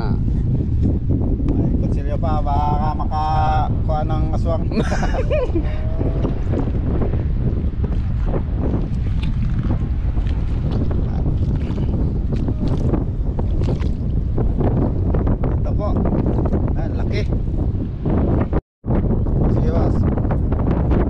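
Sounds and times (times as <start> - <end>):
wind buffeting microphone: 0.0 - 21.0
splashes: 8.2 - 14.1.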